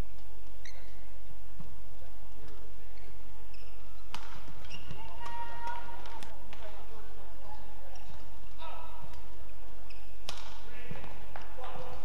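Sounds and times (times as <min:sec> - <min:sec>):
shoes squeaking on court floor: 0:00.0 - 0:12.0
racket hitting shuttlecock: 0:03.6 - 0:06.9, 0:10.2 - 0:11.9.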